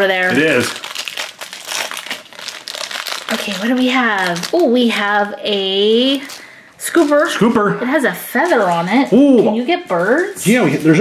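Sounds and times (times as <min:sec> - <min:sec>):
foil wrapper crinkling: 0:00.0 - 0:07.5, 0:08.2 - 0:11.0.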